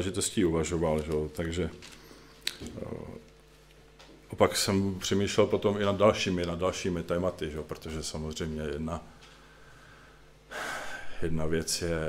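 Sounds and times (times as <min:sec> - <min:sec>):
man speaking: 0:00.0 - 0:01.9, 0:02.6 - 0:03.3, 0:04.3 - 0:09.2, 0:11.0 - 0:12.0.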